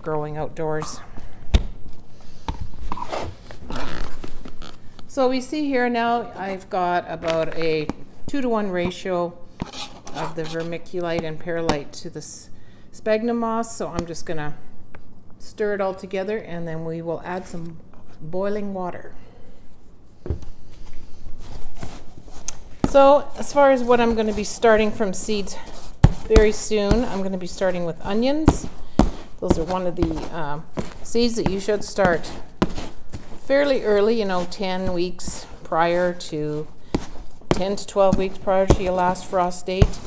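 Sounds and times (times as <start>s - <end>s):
plastic scoop stirring potting mix: 21.4s - 40.0s.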